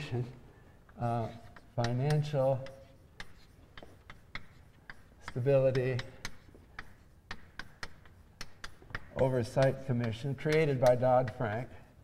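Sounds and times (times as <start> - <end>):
chalk tapping on blackboard: 0.9 - 12.0.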